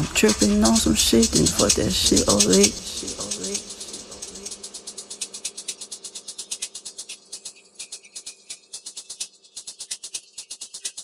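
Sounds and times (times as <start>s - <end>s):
faint sustained pad: 0.0s - 11.0s
fast hi-hat pattern: 0.0s - 11.0s.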